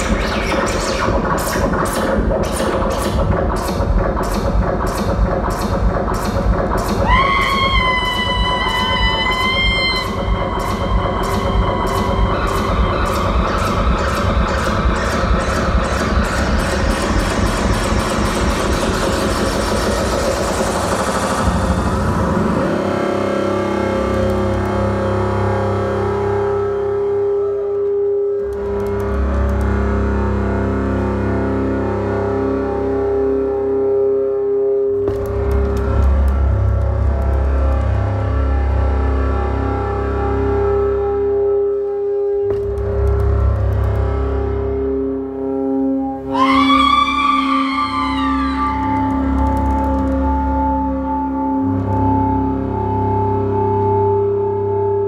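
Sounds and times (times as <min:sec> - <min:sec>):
distorted guitar: 0:00.0 - 0:26.0
deep bass drone: 0:00.0 - 0:55.0.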